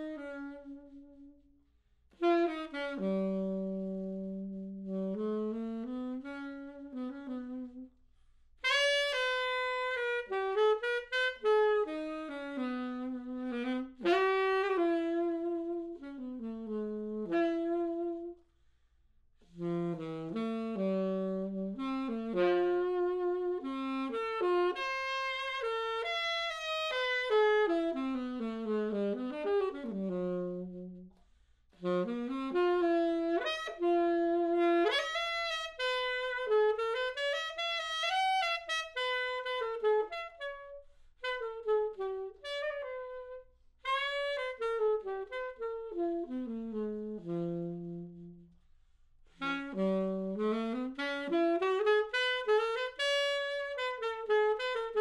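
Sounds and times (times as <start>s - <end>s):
alto saxophone melody: 0.0s - 55.0s.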